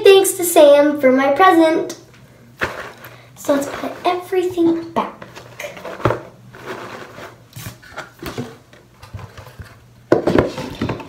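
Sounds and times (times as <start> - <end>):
items knocking in cardboard box: 2.6 - 3.9, 5.8 - 7.4, 10.1 - 11.0
cardboard lid scraping: 5.2 - 11.0.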